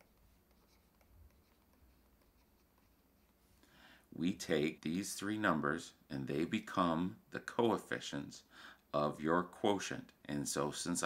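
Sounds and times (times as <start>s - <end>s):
pen scratching on a screen: 0.0s - 3.2s.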